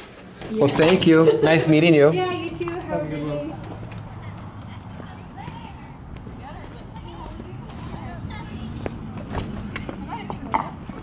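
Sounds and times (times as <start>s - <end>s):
faint indistinct voices: 2.3s - 11.0s
footsteps on concrete: 2.4s - 11.0s.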